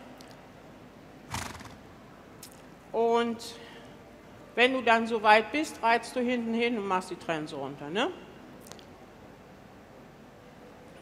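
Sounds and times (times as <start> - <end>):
horse snorting: 1.3 - 1.8.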